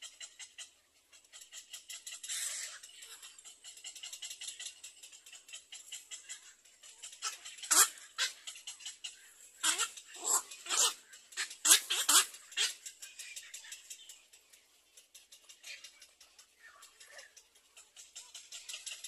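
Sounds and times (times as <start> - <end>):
harsh barking bird calls: 0.0 - 19.0
fast high ticking: 1.5 - 19.0.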